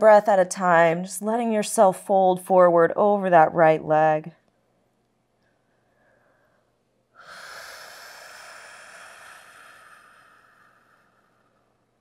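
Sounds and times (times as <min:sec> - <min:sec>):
woman breathing close: 0:05.6 - 0:12.0.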